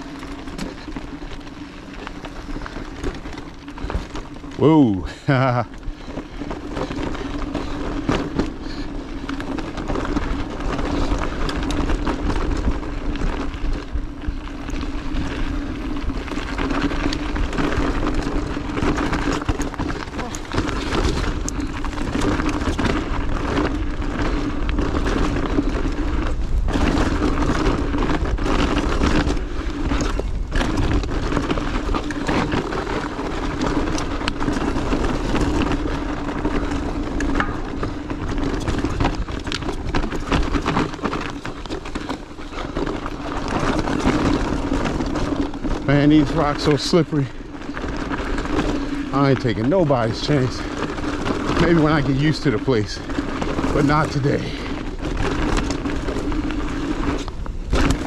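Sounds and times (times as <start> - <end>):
bike knocking and rattling: 0.0 - 58.0
bike tyre rumble: 0.0 - 58.0.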